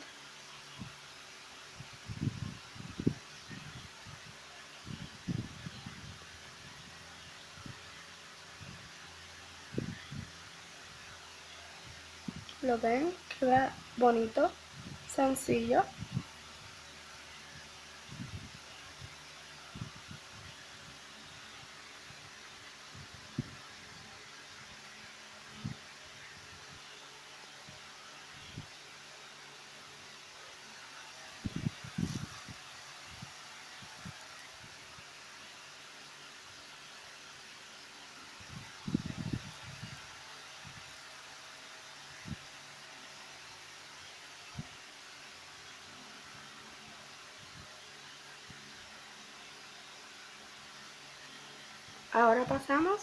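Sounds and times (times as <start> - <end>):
faint room hiss: 0.0 - 53.0.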